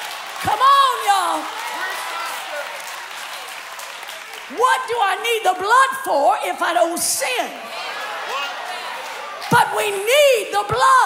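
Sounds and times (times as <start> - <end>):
congregation applauding: 0.0 - 4.6, 7.6 - 10.2.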